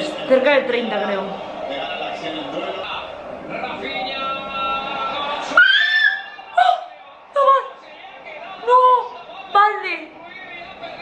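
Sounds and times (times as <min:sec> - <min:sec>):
voices from football broadcast: 0:00.0 - 0:11.0
high rising cry: 0:05.4 - 0:06.8.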